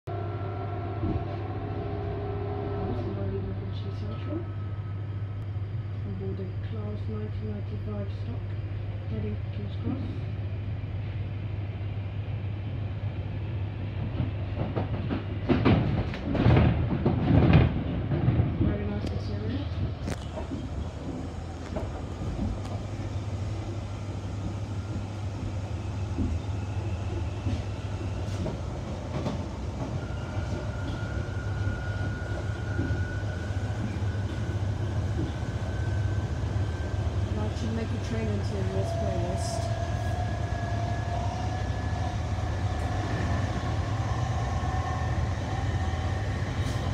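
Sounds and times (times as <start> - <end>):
loud knocks and clatter: 14.6 - 18.7.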